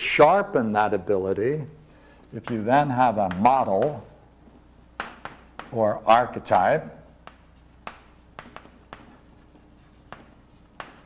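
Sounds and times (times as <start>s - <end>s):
chalk tapping and scratching: 2.4s - 11.0s.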